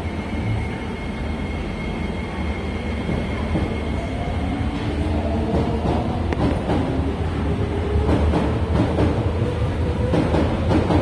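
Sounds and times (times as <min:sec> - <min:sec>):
train rumble: 0:00.0 - 0:11.0.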